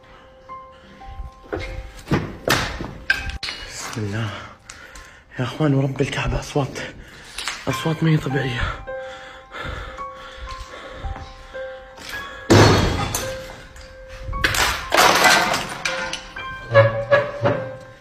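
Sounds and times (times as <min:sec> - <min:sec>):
background music with held tones: 0:00.0 - 0:18.0.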